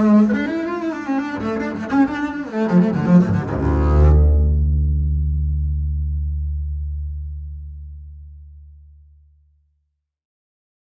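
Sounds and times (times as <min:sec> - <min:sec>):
double bass low note ringing: 0:02.8 - 0:09.6.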